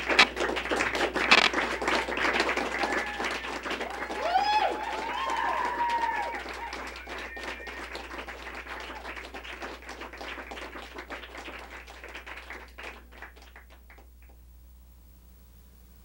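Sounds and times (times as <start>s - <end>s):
audience whooping: 0.0s - 10.8s
audience applauding: 0.0s - 14.4s.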